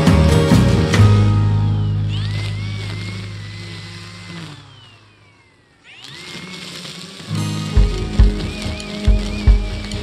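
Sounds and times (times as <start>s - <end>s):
music with drum beat: 0.0s - 1.4s, 7.6s - 10.0s
string trimmer motor whine: 0.0s - 10.0s.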